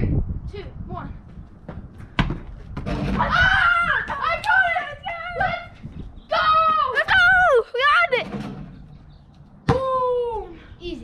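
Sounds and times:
boys shouting excitedly: 3.2s - 8.3s.

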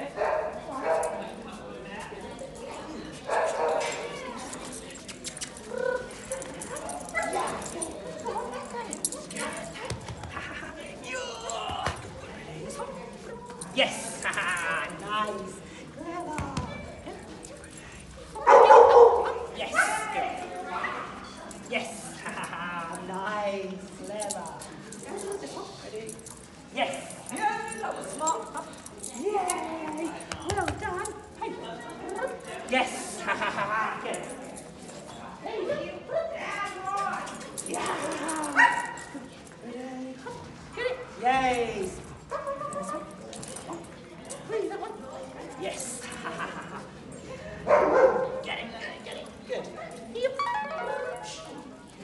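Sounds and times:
dog barking: 18.4s - 19.4s, 47.7s - 48.3s.

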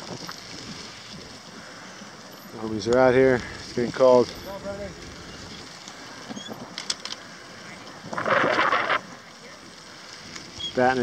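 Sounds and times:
handheld microphone noise outdoors: 0.0s - 11.0s.

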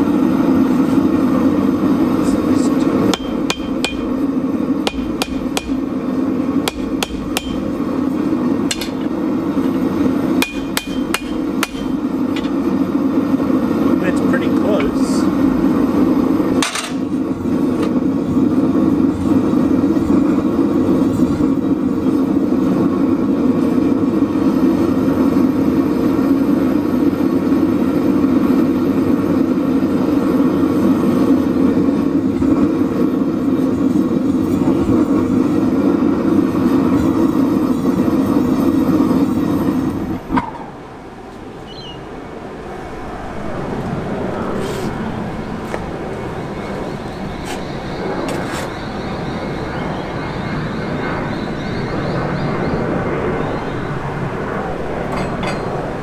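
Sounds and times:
gas forge burner roaring: 0.0s - 52.8s, 53.4s - 56.0s
hammer striking steel on anvil: 3.1s - 4.2s, 4.9s - 5.9s, 6.7s - 7.8s, 8.7s - 9.2s, 10.4s - 12.6s, 55.2s - 55.7s.

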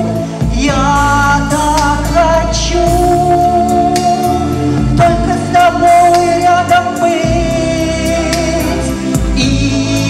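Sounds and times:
instrumental accompaniment: 0.0s - 10.0s
woman singing pop song: 0.0s - 10.0s.

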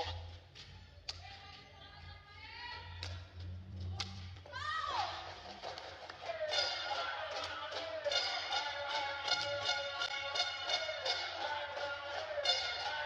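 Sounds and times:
music: 3.1s - 13.0s.

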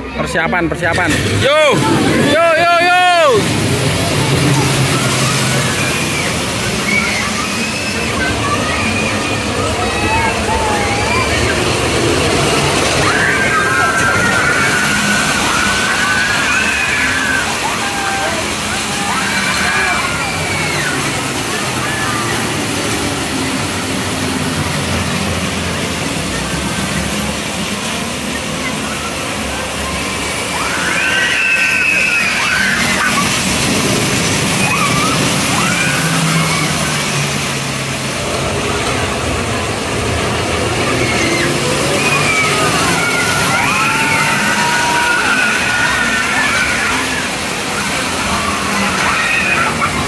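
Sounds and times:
roller coaster rush: 0.0s - 50.0s
high squeals of wheels: 2.2s - 24.2s, 29.9s - 37.4s, 40.6s - 50.0s.

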